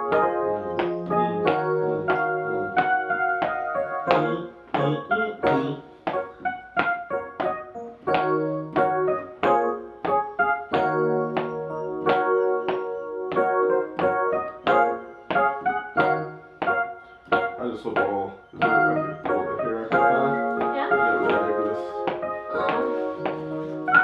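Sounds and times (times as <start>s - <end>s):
digital piano chords: 0.0s - 24.0s.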